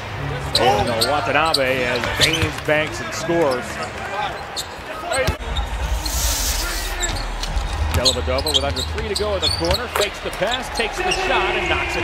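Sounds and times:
arena ambience: 0.0s - 12.0s.

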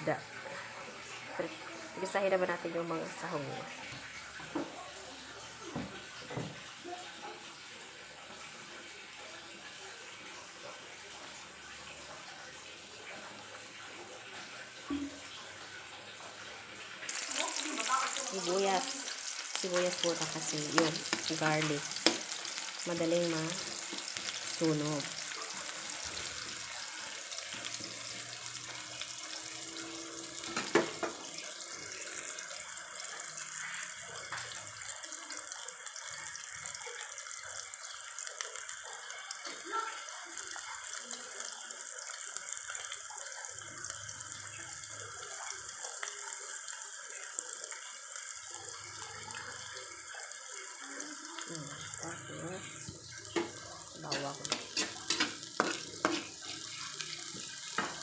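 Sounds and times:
onions sizzling in hot oil: 0.0s - 58.0s
metal spatula scraping pan: 53.4s - 57.0s.

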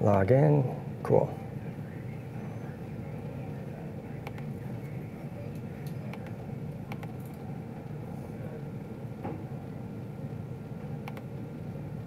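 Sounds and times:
low room hum: 0.0s - 12.0s
faint clicks: 11.0s - 11.3s.

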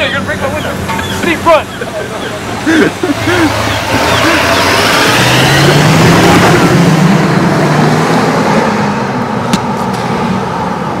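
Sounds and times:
truck engine accelerating away: 0.2s - 11.0s.

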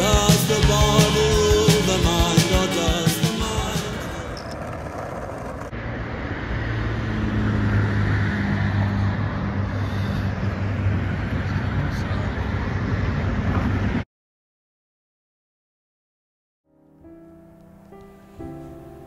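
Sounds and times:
engine hum: 0.0s - 14.0s
road noise: 0.0s - 14.1s, 17.1s - 19.0s.

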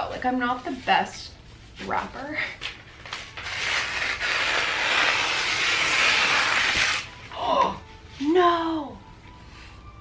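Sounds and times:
scissors ripping wrapping paper: 3.0s - 7.1s.

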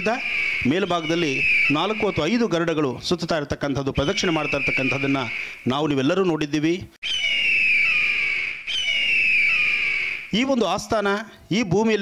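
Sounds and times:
kite whistled cries: 0.0s - 2.7s, 4.0s - 6.0s, 7.0s - 10.4s.

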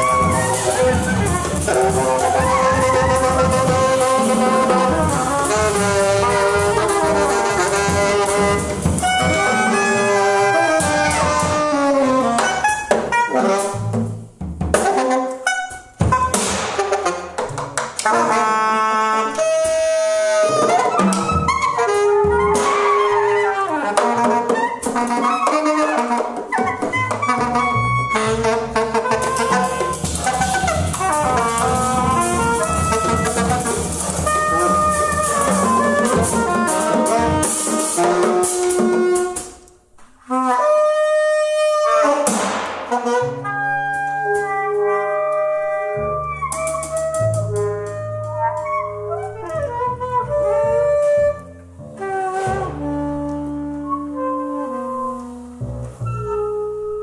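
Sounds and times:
free jazz ensemble horns: 0.0s - 57.0s
sharp hits: 42.3s - 43.1s.

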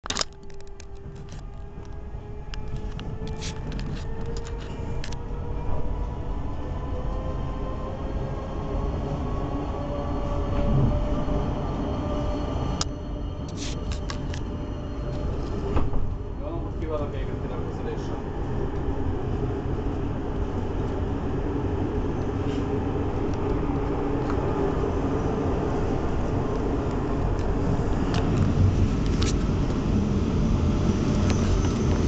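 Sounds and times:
train wheels rumbling on rails: 0.1s - 32.0s.

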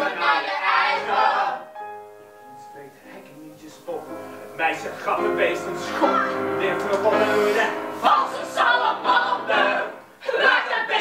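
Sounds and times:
vocal ensemble singing: 0.0s - 1.8s, 5.1s - 11.0s.

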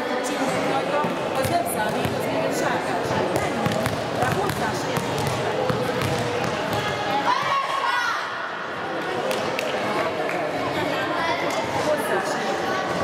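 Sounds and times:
children and adults chattering: 0.0s - 13.0s
ball bouncing on hall floor: 1.0s - 2.4s, 3.0s - 7.5s.

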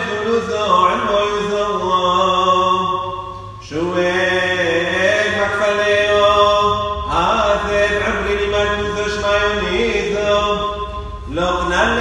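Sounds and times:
man chanting a hymn: 0.0s - 12.0s.

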